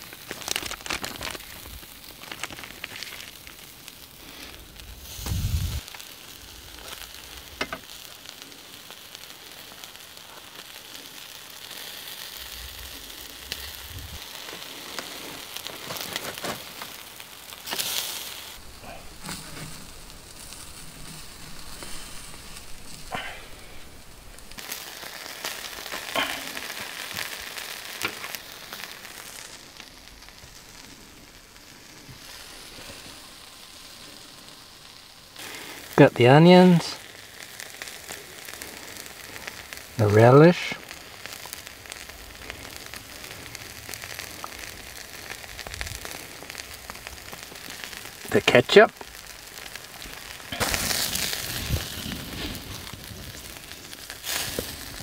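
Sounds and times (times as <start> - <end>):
crackles and pops: 0.0 - 55.0
patties sizzling on grill: 0.0 - 55.0
low rumble: 12.6 - 14.2, 18.6 - 24.6.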